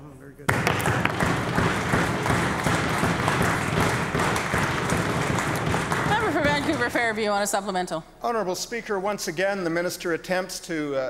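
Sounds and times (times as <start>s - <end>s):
desks thumping: 0.5s - 7.2s
people clapping: 0.5s - 7.4s.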